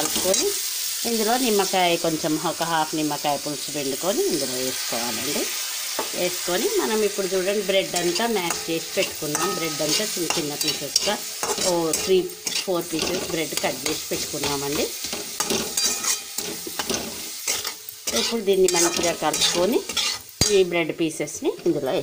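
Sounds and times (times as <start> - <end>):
frying sizzle: 0.0 - 22.0
spatula scraping steel pan: 7.9 - 20.6.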